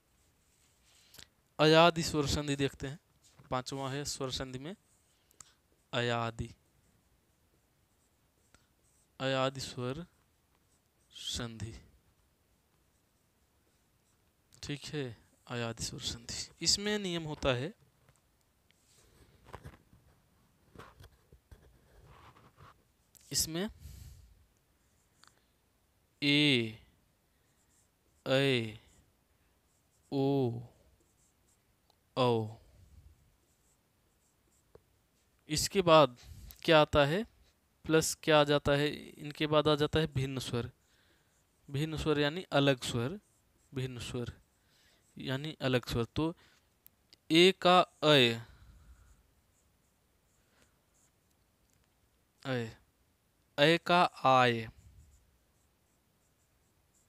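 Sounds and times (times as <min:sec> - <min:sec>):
person speaking: 0:01.6 - 0:06.7, 0:08.0 - 0:12.1, 0:12.9 - 0:17.8, 0:20.7 - 0:24.2, 0:26.2 - 0:26.9, 0:27.7 - 0:29.0, 0:29.7 - 0:32.7, 0:35.4 - 0:40.8, 0:41.6 - 0:44.5, 0:45.1 - 0:46.6, 0:47.2 - 0:49.1, 0:53.6 - 0:55.2
marker writing on whiteboard: 0:29.6 - 0:32.1, 0:33.3 - 0:35.8, 0:41.3 - 0:45.6, 0:49.0 - 0:51.3, 0:54.7 - 0:57.0.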